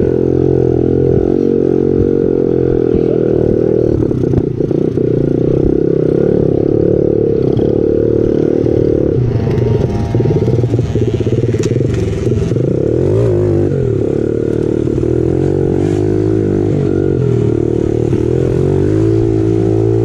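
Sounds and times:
dirt bike engine running: 0.0s - 20.0s
clatter: 7.4s - 16.6s.

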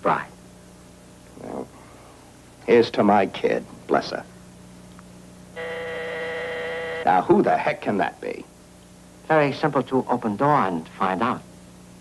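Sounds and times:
electric door buzzer: 5.6s - 7.1s.

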